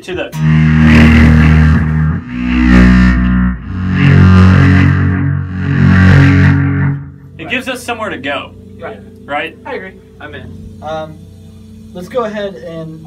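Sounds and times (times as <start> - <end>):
electric bass: 0.3 - 9.6
distorted electric guitar chords: 0.3 - 12.0.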